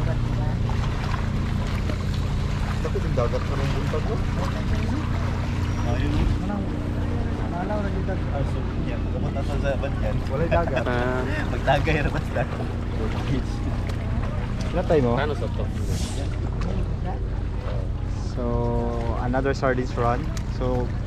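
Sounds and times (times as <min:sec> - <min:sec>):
steady low rumble: 0:00.0 - 0:21.0
people talking: 0:02.8 - 0:05.2, 0:05.8 - 0:13.7, 0:14.6 - 0:17.3, 0:18.0 - 0:20.9.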